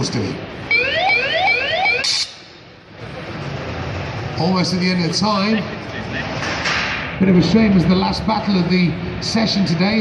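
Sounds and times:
electronic alarm whooping: 0:00.7 - 0:02.3.

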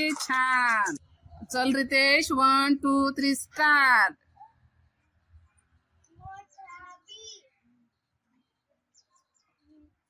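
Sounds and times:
child's sing-song voice: 0:06.2 - 0:07.4.

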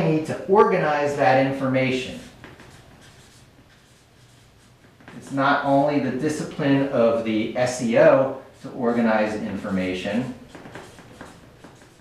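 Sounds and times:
marker scratching on paper: 0:00.0 - 0:12.0.

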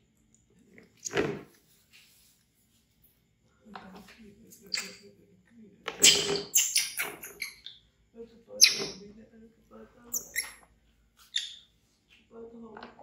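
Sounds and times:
baby monkey screaming: 0:06.0 - 0:07.8, 0:08.6 - 0:09.0, 0:10.1 - 0:10.6.

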